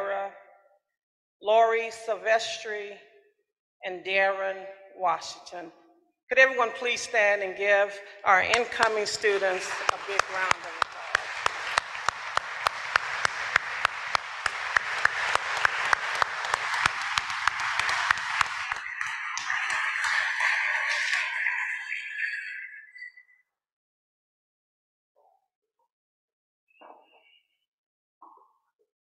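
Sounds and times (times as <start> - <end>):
audience applauding: 8.5 - 22.6
close sharp even claps: 9.6 - 21.3.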